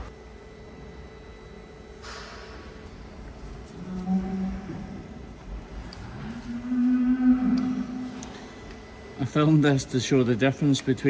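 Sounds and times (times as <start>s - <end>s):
cow mooing: 3.7s - 5.2s, 6.1s - 8.5s.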